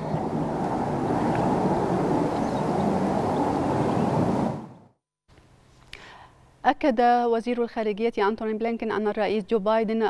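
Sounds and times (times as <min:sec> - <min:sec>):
low noisy outdoor rumble: 0:00.0 - 0:04.9.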